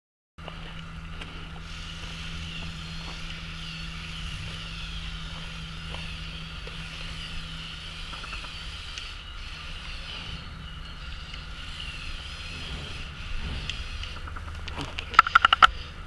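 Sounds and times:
electric motor and gears whining: 0:00.4 - 0:16.0.

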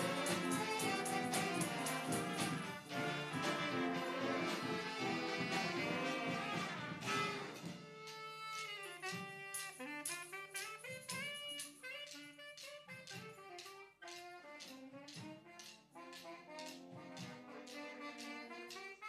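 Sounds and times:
steady drum beat: 0:00.0 - 0:10.1
brass band playing jazz: 0:00.0 - 0:19.0
saxophone solo: 0:00.0 - 0:19.0.

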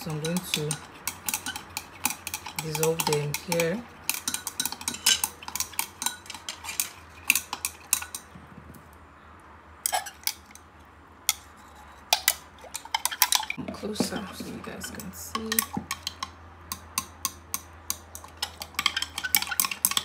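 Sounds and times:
stirrer clinking against glass beaker: 0:00.0 - 0:08.3, 0:12.1 - 0:20.0.

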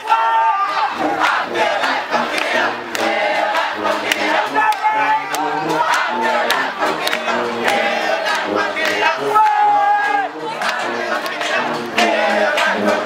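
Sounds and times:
group singing and chanting: 0:00.0 - 0:13.0
hand claps: 0:01.2 - 0:13.0.

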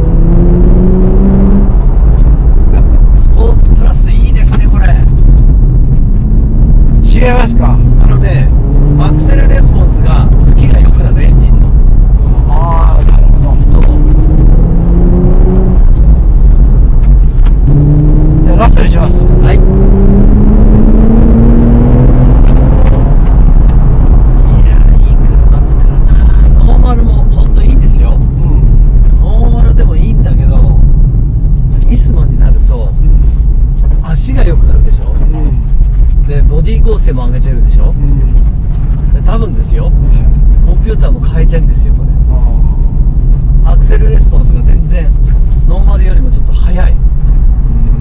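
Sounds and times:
car engine revving on track: 0:00.0 - 0:48.0
people talking: 0:02.7 - 0:05.2, 0:07.0 - 0:11.6, 0:12.4 - 0:14.2, 0:18.4 - 0:19.7, 0:24.4 - 0:30.8, 0:31.8 - 0:33.2, 0:34.0 - 0:35.6, 0:36.2 - 0:38.4, 0:39.2 - 0:42.9, 0:43.6 - 0:47.0.

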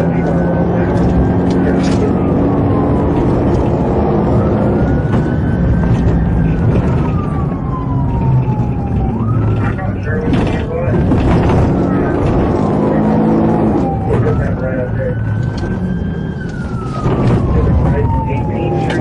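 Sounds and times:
car engine and road noise: 0:00.0 - 0:19.0
police siren wailing: 0:00.0 - 0:19.0.

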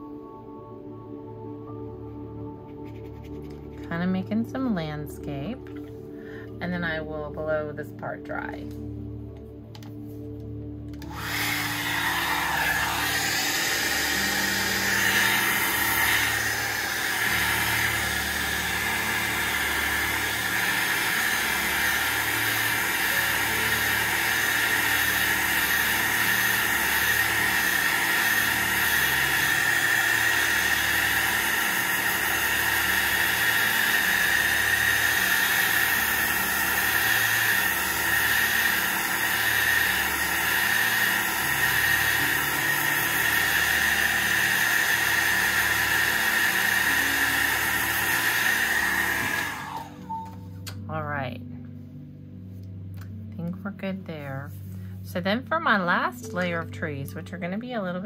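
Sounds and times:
heat gun blowing: 0:11.0 - 0:50.3.

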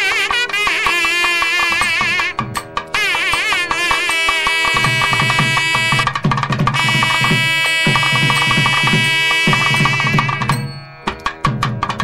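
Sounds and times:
reed horn holding a bright note: 0:00.0 - 0:10.7
drum strokes: 0:00.0 - 0:12.0.

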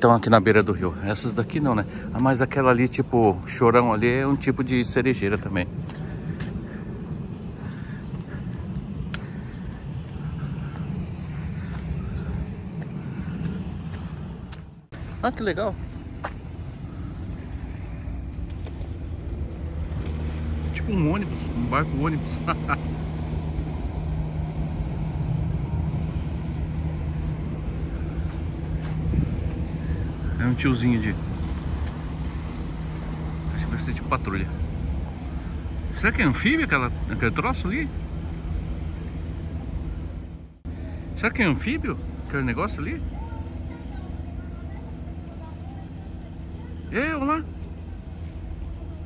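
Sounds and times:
low outdoor rumble: 0:00.0 - 0:49.0
outboard motor running: 0:15.0 - 0:49.0.

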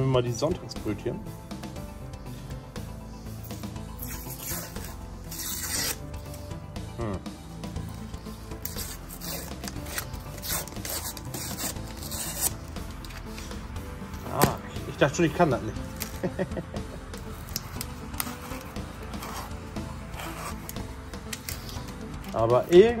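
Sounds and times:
paper wrapper tearing: 0:04.0 - 0:06.0, 0:08.5 - 0:13.5, 0:15.8 - 0:16.3, 0:17.2 - 0:21.9
cardboard tube cracking open: 0:17.3 - 0:21.9.

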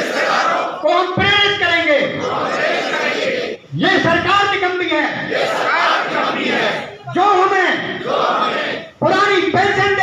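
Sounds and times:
crowd reciting in unison: 0:00.0 - 0:00.8, 0:02.0 - 0:03.6, 0:05.2 - 0:07.1, 0:07.8 - 0:09.1.

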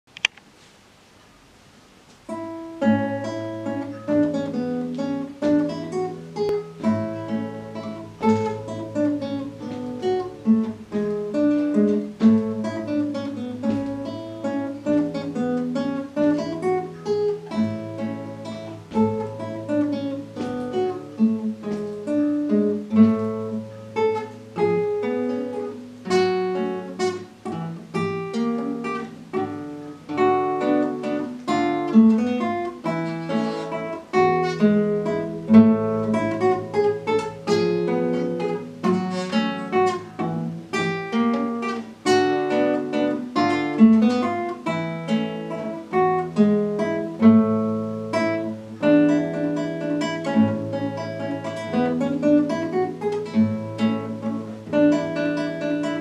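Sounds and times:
solo classical guitar: 0:00.0 - 0:56.0.

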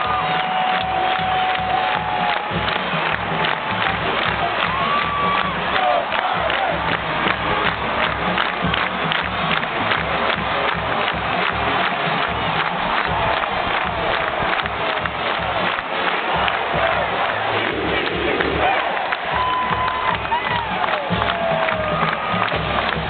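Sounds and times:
crowd cheering and yelling: 0:00.0 - 0:23.0.

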